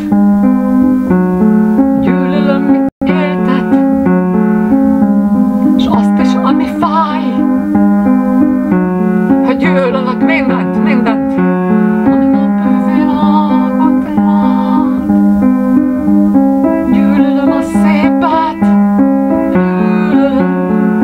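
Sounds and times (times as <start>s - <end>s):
keyboard playing held chords: 0.0s - 21.0s
woman singing: 12.0s - 15.1s, 16.9s - 18.8s, 19.5s - 20.8s.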